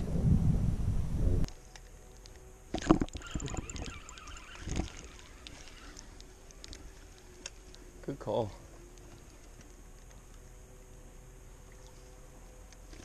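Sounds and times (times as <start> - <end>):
low rumbling noise: 0.0 - 1.5
fishing reel clicks: 1.8 - 7.8.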